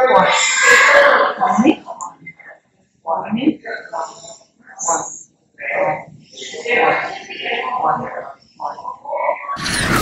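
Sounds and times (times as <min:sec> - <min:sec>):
loud rushing noise: 0:09.6 - 0:10.0.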